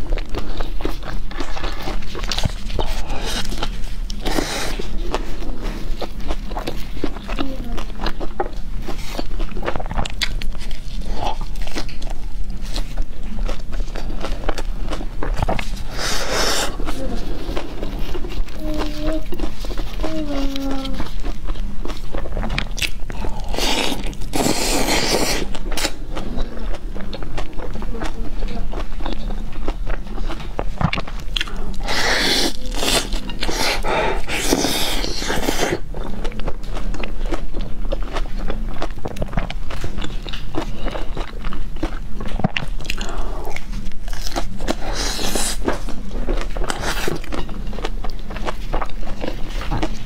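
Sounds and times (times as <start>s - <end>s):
chewing crisp pizza: 0.0s - 50.0s
steady low hum: 0.0s - 50.0s
wet mouth sounds: 13.4s - 50.0s.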